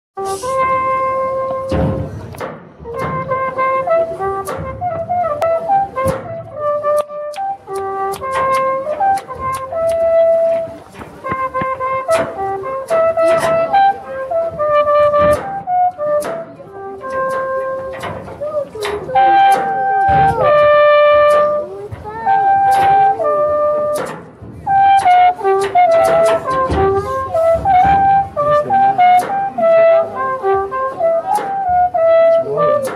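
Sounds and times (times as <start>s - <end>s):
alphorn melody: 0.2s - 32.9s.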